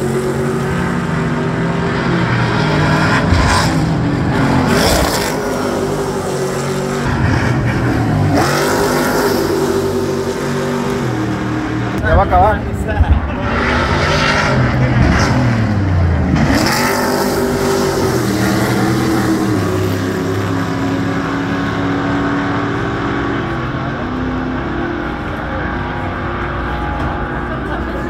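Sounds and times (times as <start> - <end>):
race cars passing at speed: 0.0 - 28.0.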